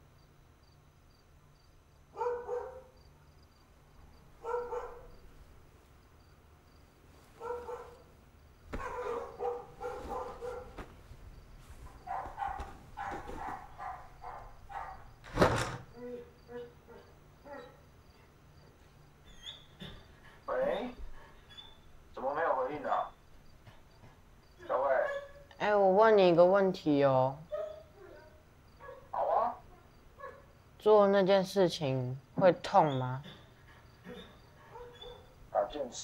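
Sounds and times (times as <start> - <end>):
faint crickets chirping: 0.0 - 36.0
dog barking: 2.1 - 3.0, 4.4 - 5.2, 7.4 - 8.1, 8.7 - 10.9, 11.9 - 15.2, 16.5 - 17.9, 24.6 - 25.5, 27.5 - 30.5, 34.0 - 36.0.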